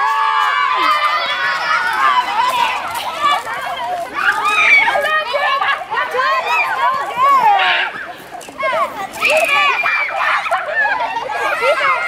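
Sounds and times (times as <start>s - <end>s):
children shouting and screaming: 0.0s - 12.0s.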